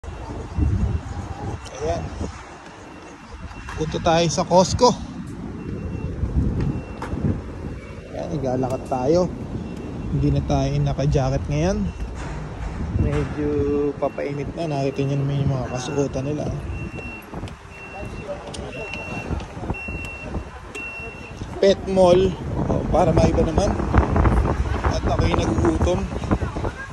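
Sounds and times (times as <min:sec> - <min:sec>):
road traffic passing: 0:00.0 - 0:26.9
wind buffeting microphone: 0:00.0 - 0:26.9
electronic warning beeper: 0:13.9 - 0:21.4.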